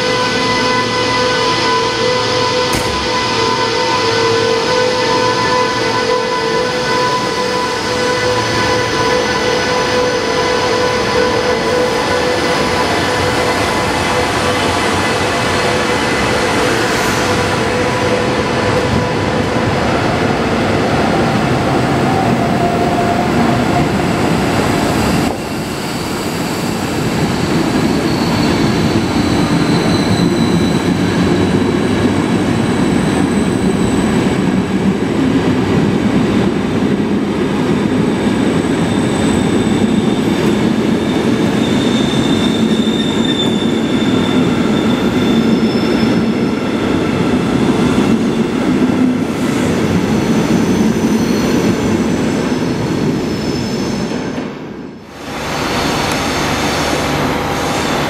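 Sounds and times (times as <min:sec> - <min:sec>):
train coaches rumbling past: 0:00.0 - 0:58.0
high wheel squeals: 0:25.0 - 0:32.0, 0:38.8 - 0:46.9.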